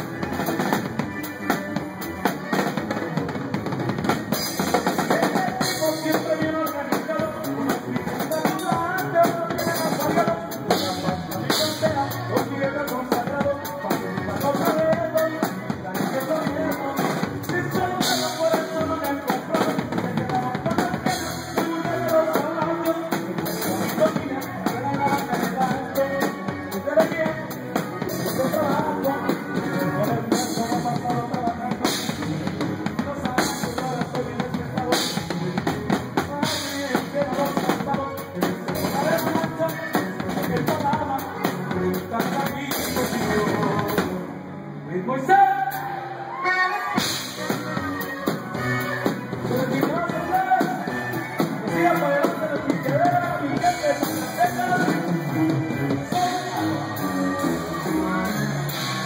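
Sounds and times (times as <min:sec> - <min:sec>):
sousaphone bass: 0:00.0 - 0:44.1, 0:45.0 - 0:59.0
drum kit: 0:00.0 - 0:44.4, 0:45.6 - 0:59.0
guitar: 0:00.0 - 0:59.0
live band music: 0:00.0 - 0:59.0.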